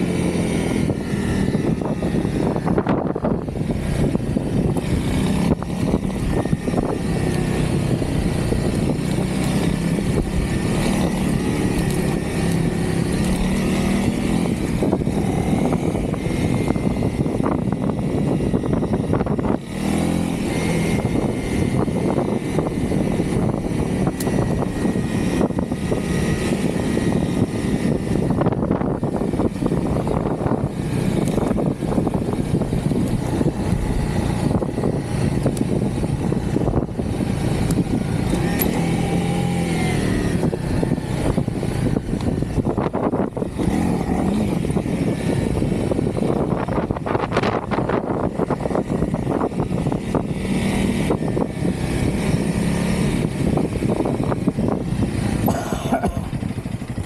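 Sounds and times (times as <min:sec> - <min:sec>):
motorcycle engine running: 0:00.0 - 0:57.0
continuous rush of noise: 0:28.2 - 0:57.0.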